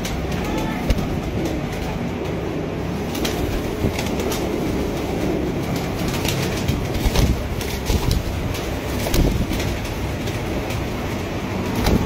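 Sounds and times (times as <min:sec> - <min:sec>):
birds flapping: 0:00.0 - 0:12.0
dense rumble of noise: 0:00.0 - 0:12.0
pigeons cooing: 0:00.0 - 0:12.0.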